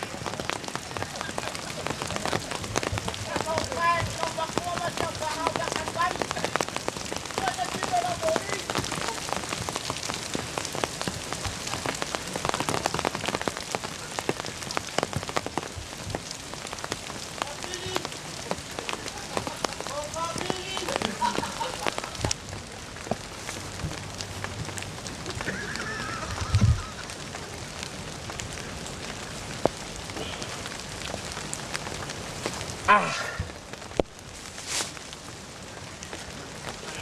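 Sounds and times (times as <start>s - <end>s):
dense crackling patter: 0.0s - 37.0s.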